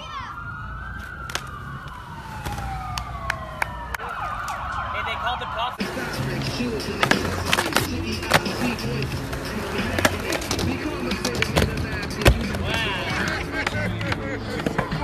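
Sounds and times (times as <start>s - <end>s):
skateboard wheels rolling on concrete: 0.0s - 15.0s
voices: 3.9s - 15.0s
music: 5.8s - 15.0s
skateboard clacks: 5.8s - 15.0s.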